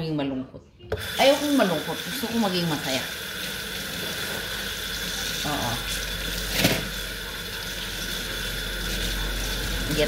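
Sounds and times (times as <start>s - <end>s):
tap water running into sink: 0.9s - 10.0s.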